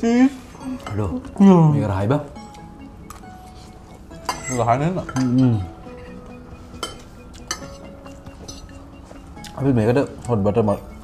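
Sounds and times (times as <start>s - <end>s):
faint background music: 0.0s - 11.0s
cutlery clinking on plates: 4.2s - 8.8s.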